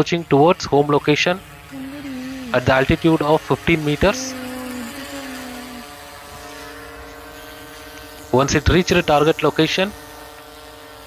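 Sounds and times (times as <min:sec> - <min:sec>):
quadcopter propellers humming: 0:00.0 - 0:11.0.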